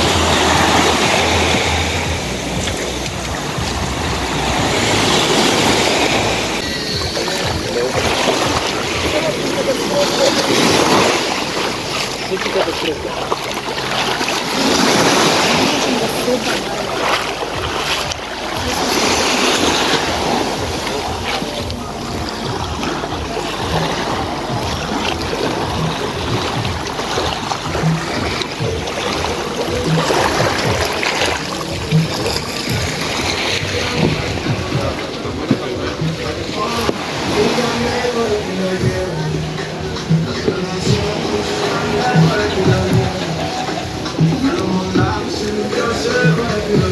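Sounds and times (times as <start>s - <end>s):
background music: 0.0s - 46.9s
small waves: 0.0s - 46.9s.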